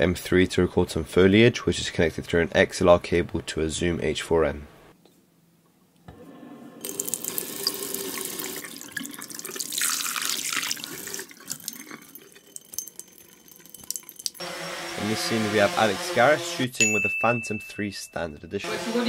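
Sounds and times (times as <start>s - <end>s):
tap water running into sink: 6.8s - 14.4s.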